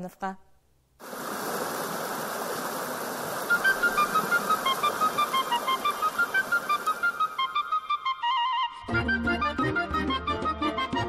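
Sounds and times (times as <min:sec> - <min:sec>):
stream rushing over rocks: 0:01.0 - 0:07.8.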